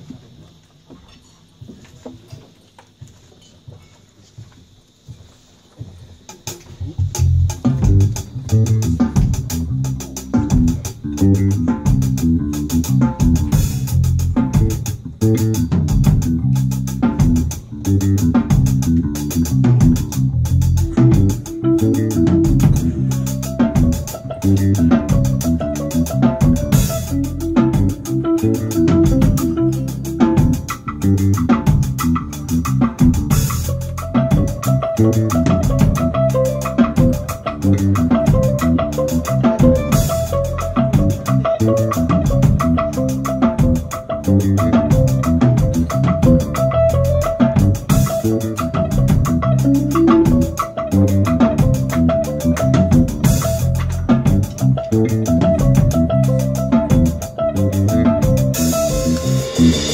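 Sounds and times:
light drum kit: 0:00.0 - 0:59.9
electric bass notes: 0:06.6 - 0:59.9
guitar notes: 0:14.4 - 0:59.9.

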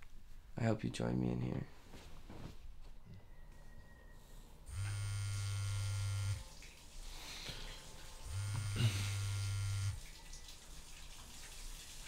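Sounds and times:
mobile phone vibrating: 0:04.7 - 0:06.4, 0:08.3 - 0:10.0.

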